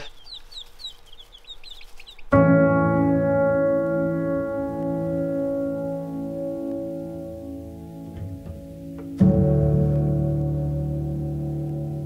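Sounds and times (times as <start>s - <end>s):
chicks peeping: 0.0s - 2.6s
music with held chord: 2.3s - 12.0s.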